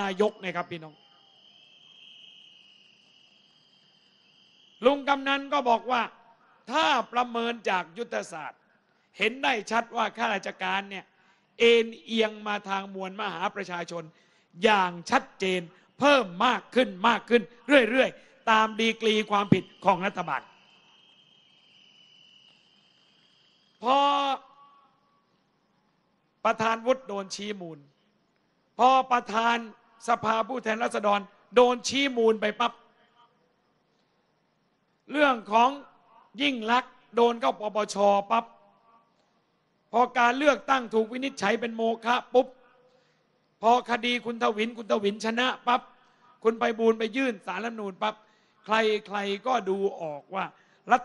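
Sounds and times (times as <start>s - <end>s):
man speaking over pa system: 0.0s - 1.0s, 4.8s - 8.6s, 9.2s - 11.0s, 11.6s - 20.5s, 23.8s - 24.5s
crickets trilling: 0.0s - 51.0s
faint steady high tone: 0.0s - 51.0s.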